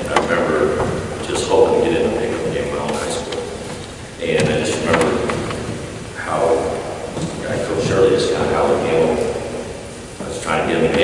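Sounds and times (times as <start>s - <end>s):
man speaking in large hall: 0.0s - 11.0s.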